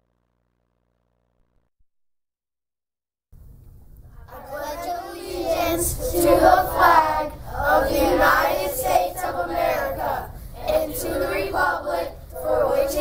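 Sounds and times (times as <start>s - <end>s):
children reciting in unison: 4.2s - 13.0s.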